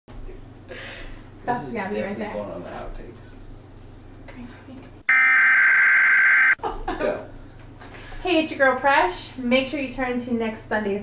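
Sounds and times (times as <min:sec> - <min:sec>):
censor bleep: 0:05.1 - 0:06.6.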